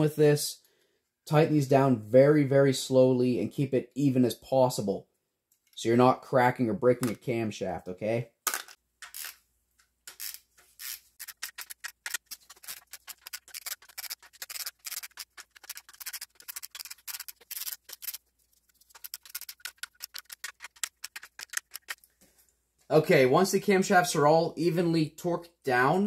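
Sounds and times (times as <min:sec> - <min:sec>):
hand ratchet clicking: 0:10.1 - 0:18.2.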